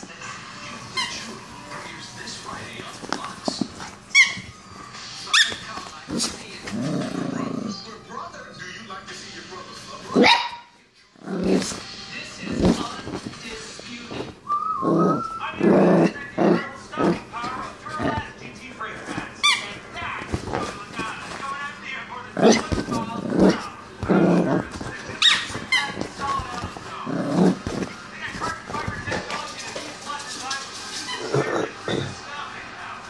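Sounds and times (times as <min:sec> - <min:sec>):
small dog barking: 0:10.2 - 0:10.8.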